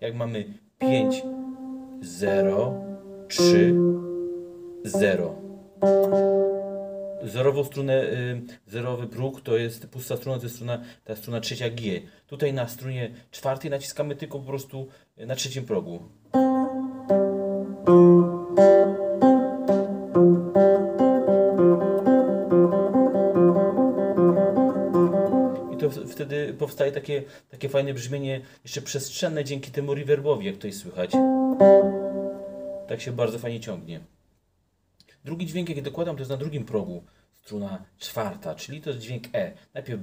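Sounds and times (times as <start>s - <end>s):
electric guitar single notes: 0.8s - 7.5s, 16.3s - 26.6s, 31.1s - 33.0s.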